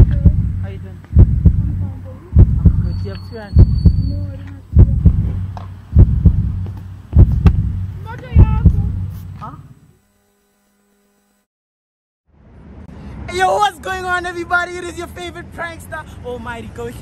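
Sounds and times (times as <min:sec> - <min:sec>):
heartbeat double thumps: 0:00.0 - 0:09.3.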